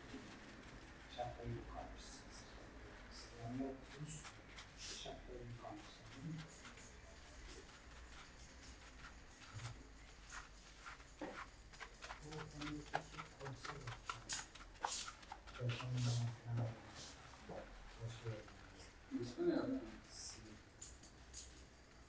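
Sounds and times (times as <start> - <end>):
shampoo lather squishing on scalp: 0.0 - 20.7.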